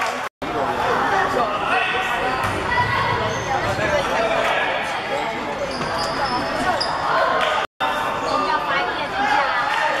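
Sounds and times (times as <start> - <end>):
voices in sports hall: 0.0 - 10.0
sneakers squeaking on wooden court: 5.2 - 7.2.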